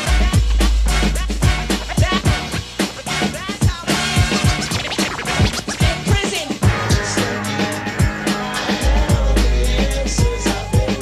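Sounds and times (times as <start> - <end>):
hip hop drum beat: 0.0 - 11.0
turntable scratching: 0.0 - 11.0.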